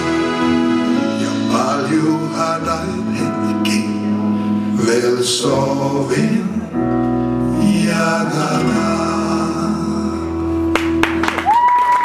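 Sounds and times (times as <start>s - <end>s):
audience clapping: 10.7s - 12.0s
high cheering call: 11.4s - 12.0s.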